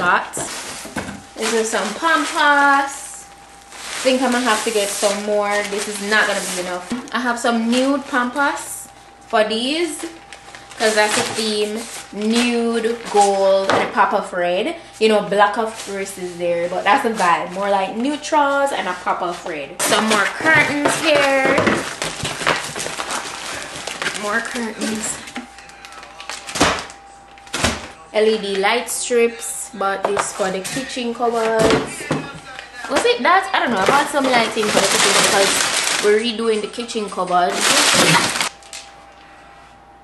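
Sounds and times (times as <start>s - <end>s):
plastic packs rustling and crinkling: 0.0s - 28.9s, 30.1s - 39.2s
faint steady hum: 0.0s - 40.0s.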